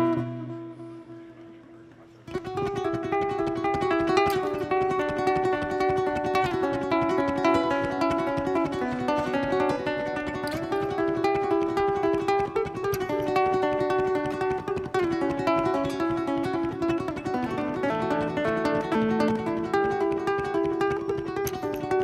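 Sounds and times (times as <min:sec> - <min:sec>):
fingerpicked acoustic guitar: 0:00.0 - 0:22.0.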